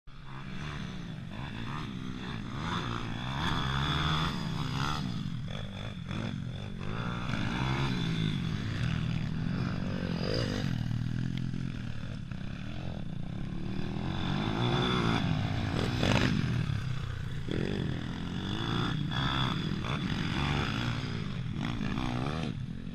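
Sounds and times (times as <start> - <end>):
dirt bike engines revving: 0.1 - 22.9.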